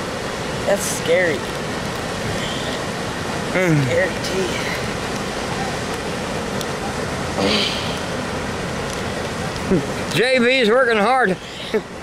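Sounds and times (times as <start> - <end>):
steady rushing noise: 0.0 - 12.0.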